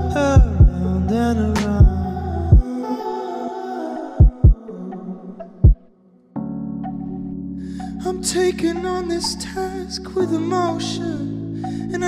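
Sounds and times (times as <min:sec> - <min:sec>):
sustained keyboard chords: 0:00.0 - 0:02.7, 0:06.4 - 0:12.0
bass drum thumps: 0:00.4 - 0:00.8.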